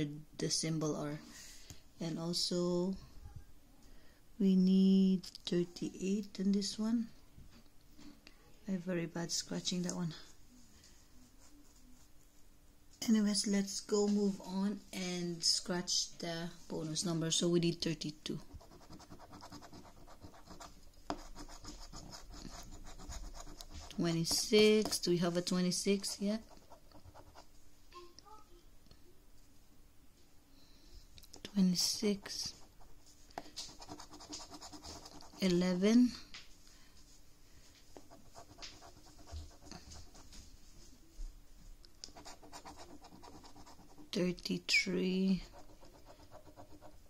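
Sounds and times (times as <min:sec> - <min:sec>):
coin scratching a scratchcard: 0:42.1 - 0:44.1.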